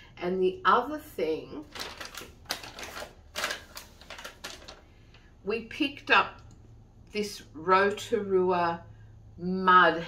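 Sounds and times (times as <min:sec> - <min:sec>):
paper gift bag rustling: 0:01.6 - 0:04.9.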